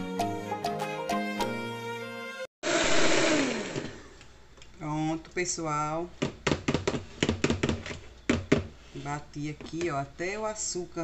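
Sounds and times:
background music: 0:00.0 - 0:02.5
electric hand mixer whirring: 0:02.6 - 0:04.2.

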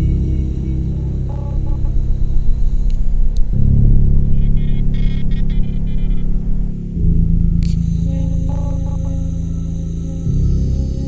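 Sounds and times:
ambient drone music: 0:00.0 - 0:11.0
faint flickering high tones: 0:00.0 - 0:11.0.

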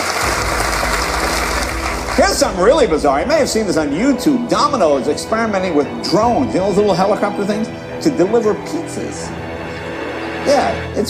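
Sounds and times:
audience applauding: 0:00.0 - 0:03.2.

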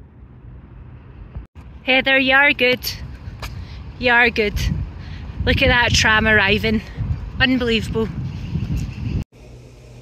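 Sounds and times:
vehicle and street rumble: 0:00.0 - 0:10.0.

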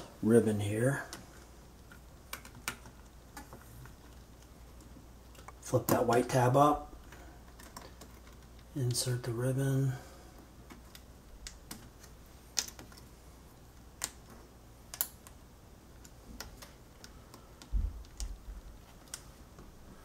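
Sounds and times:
small plastic clicks and taps: 0:14.0 - 0:15.4, 0:16.0 - 0:18.4.

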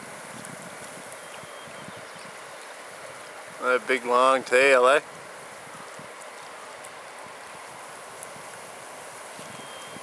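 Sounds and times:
river water flowing over rocks: 0:00.0 - 0:10.0.

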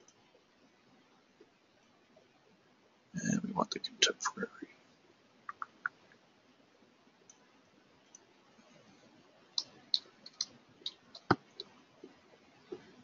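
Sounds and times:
keyboard keys clicking: 0:09.6 - 0:11.8.

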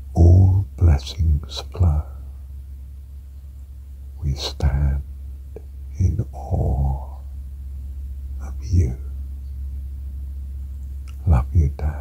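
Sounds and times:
steady low hum: 0:00.0 - 0:12.0
person whispering: 0:00.2 - 0:02.3, 0:04.2 - 0:05.1, 0:05.9 - 0:07.3, 0:08.4 - 0:09.1, 0:11.1 - 0:12.0.

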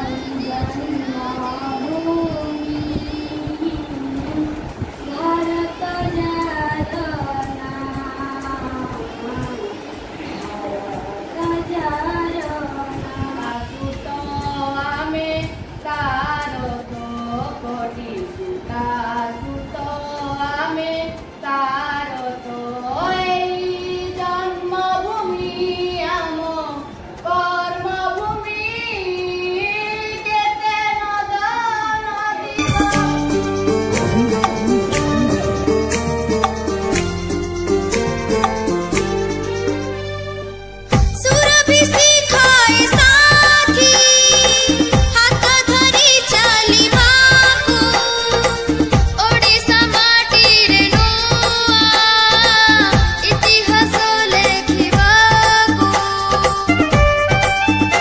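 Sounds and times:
girl singing solo: 0:00.0 - 0:34.5, 0:41.2 - 0:57.0.

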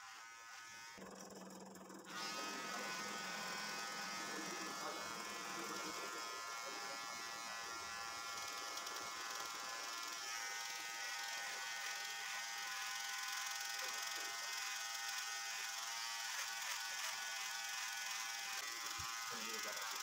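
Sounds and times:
electric hair clippers buzzing: 0:00.0 - 0:20.0.

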